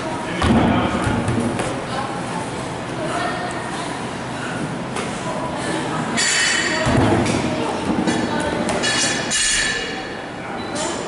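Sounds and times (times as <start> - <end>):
busy gym din: 0.0 - 11.0.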